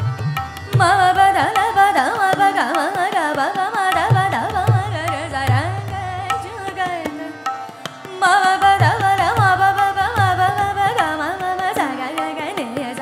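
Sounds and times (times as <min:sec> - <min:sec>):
harmonium: 0:00.0 - 0:13.0
tabla strokes: 0:00.0 - 0:13.0
woman singing classical vocal: 0:00.7 - 0:13.0.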